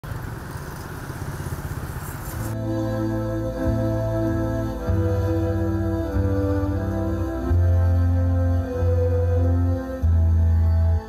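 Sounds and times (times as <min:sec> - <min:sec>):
motorbike engines rumbling: 0:00.0 - 0:11.0.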